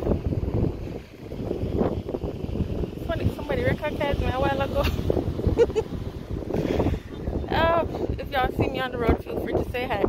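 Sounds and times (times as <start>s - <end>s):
wind buffeting microphone: 0.0s - 10.0s
person's voice: 3.0s - 5.0s, 7.4s - 10.0s.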